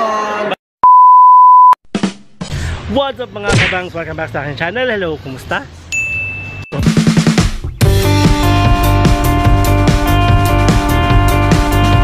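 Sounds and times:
censor bleep: 0.8 - 1.8.

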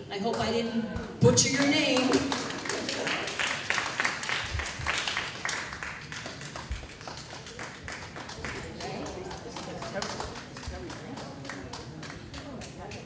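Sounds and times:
audience applauding: 1.9 - 13.0.

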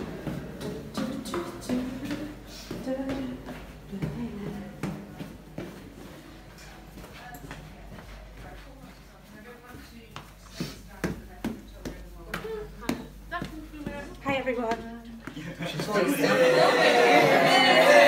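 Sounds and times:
footsteps going down stairs: 0.0 - 16.3
murmur of voices: 7.0 - 18.0.

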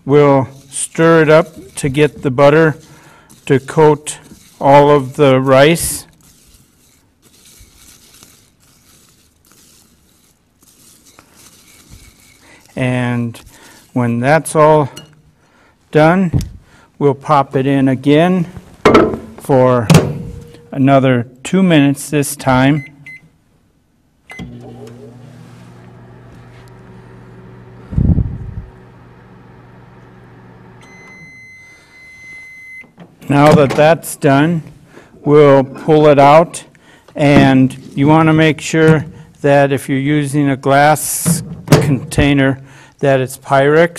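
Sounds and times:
utensil stirring rice in a bowl: 0.0 - 15.2
microwave humming: 24.3 - 33.0
microwave end tone: 28.6 - 32.9
short beep: 30.8 - 32.9.

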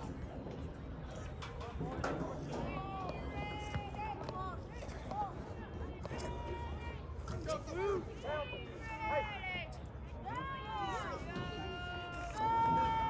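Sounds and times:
distant people shouting: 1.6 - 13.0.

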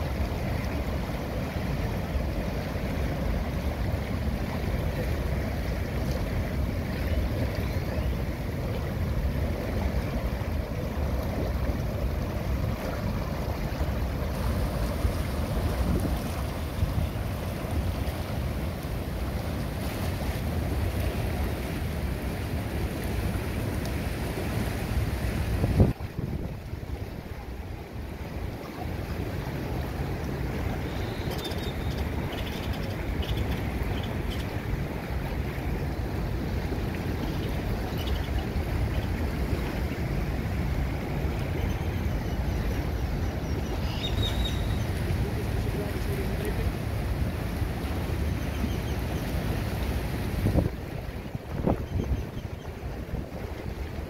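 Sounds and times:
hot tub jets bubbling water: 0.0 - 54.0
wind buffeting microphone: 25.3 - 27.5, 50.1 - 54.0.

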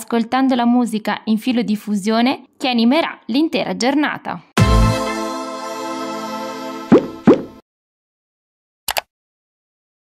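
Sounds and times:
sustained synth chord: 4.6 - 6.9
rising pop sound effects: 6.9 - 7.6.

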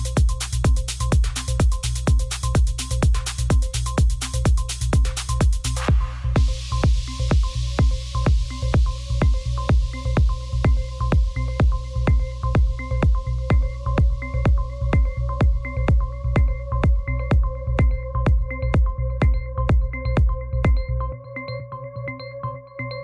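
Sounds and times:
techno kick drum: 0.0 - 21.2
deep bass line: 0.0 - 23.0.

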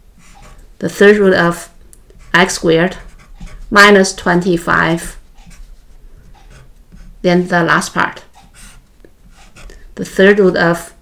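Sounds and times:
marker scratching on whiteboard: 0.2 - 11.0.

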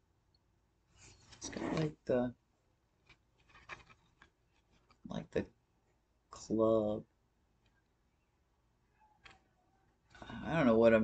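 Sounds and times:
cardboard card rustling: 3.0 - 5.1.

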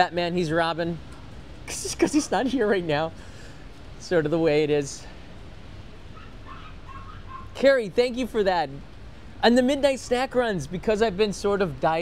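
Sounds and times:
low street rumble: 0.0 - 12.0
faint short calls: 6.1 - 7.6.

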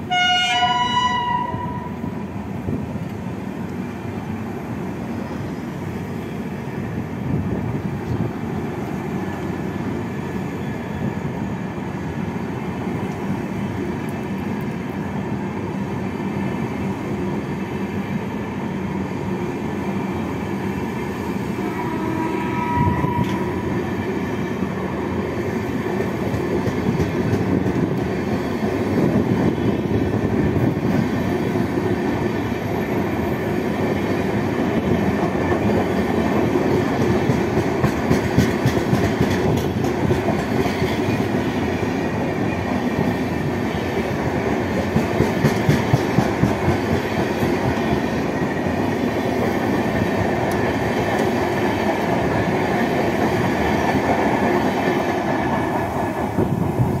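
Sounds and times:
train wheels rumbling on rails: 0.0 - 57.0
wheels clacking over rail joints: 34.8 - 41.4, 44.6 - 48.0.

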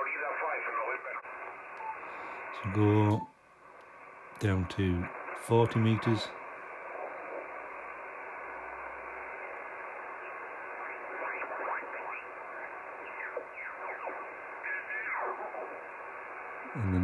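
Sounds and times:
radio band hiss: 0.0 - 17.0
sweeping radio whistles: 1.4 - 2.5, 6.6 - 16.7.

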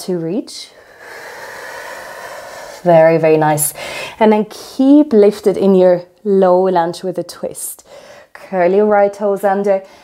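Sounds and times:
speech: 8.4 - 9.8.

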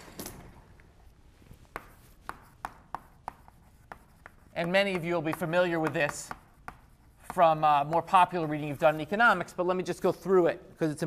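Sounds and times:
chalk tapping on blackboard: 1.6 - 9.6.

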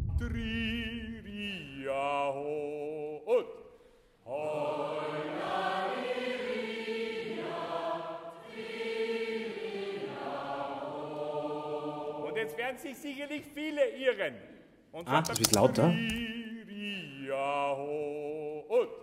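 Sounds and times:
choir singing: 4.2 - 13.3
click: 15.2 - 16.3.

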